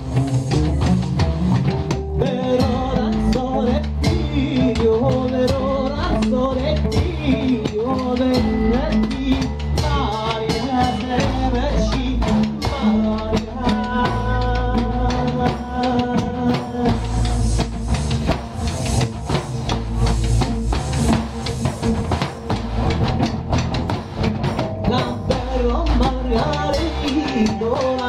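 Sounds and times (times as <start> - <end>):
bass drum beat: 0.0 - 28.0
double bass notes: 0.0 - 28.0
frame drum jingling beat: 0.0 - 28.0
man singing into microphone: 2.2 - 17.7, 24.8 - 28.0.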